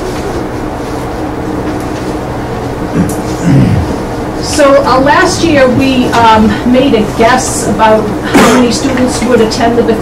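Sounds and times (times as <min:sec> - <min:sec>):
machinery hum with hiss: 0:00.0 - 0:10.0.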